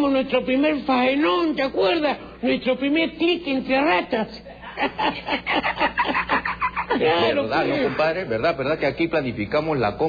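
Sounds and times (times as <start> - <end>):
man cackling laughter: 4.7 - 7.4.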